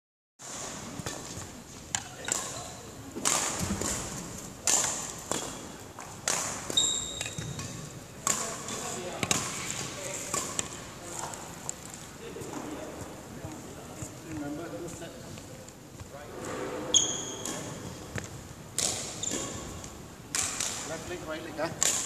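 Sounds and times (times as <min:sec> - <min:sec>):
racket hitting shuttlecock: 0:00.5 - 0:10.9, 0:17.3 - 0:20.9, 0:21.8 - 0:22.0
short high squeak: 0:06.7 - 0:07.5, 0:16.9 - 0:17.5.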